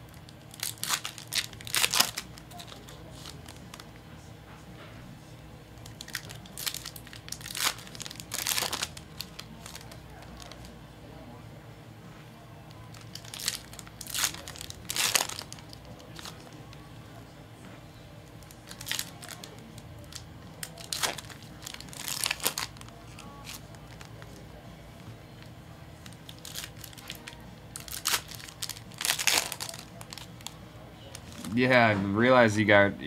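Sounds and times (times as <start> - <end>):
wrappers crinkling: 0.0 - 4.0, 5.8 - 10.8, 12.7 - 16.8, 18.3 - 31.6
foil packs tearing: 0.3 - 3.9, 5.8 - 10.7, 12.9 - 16.5, 18.4 - 24.4, 26.0 - 31.6.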